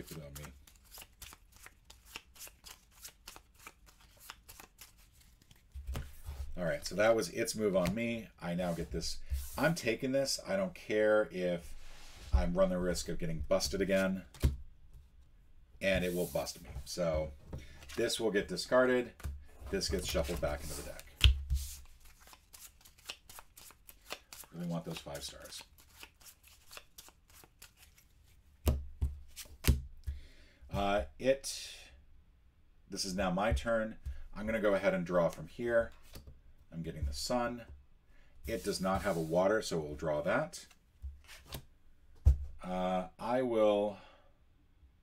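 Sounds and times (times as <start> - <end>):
cards being shuffled: 0.0 - 6.6, 17.6 - 18.2, 19.1 - 30.2, 41.1 - 41.7.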